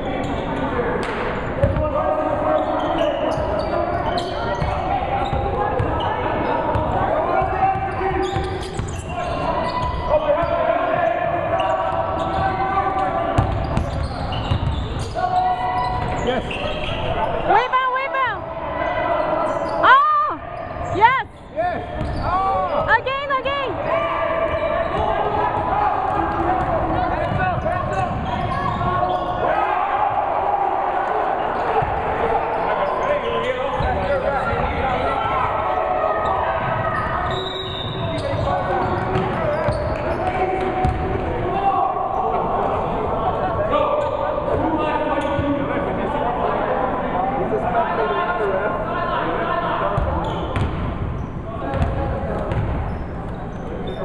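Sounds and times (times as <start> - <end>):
sneaker squeaks: 0.0 - 17.9, 19.1 - 23.5, 24.4 - 29.5, 31.6 - 35.3, 36.1 - 41.1, 43.8 - 45.6, 49.9 - 54.0
basketball bouncing on floor: 1.6 - 1.8, 13.4 - 14.8, 51.7 - 52.8
people calling out: 15.0 - 33.0.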